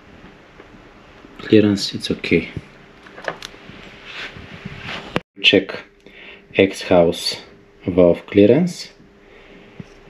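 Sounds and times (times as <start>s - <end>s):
soft rustle: 3.6s - 5.2s.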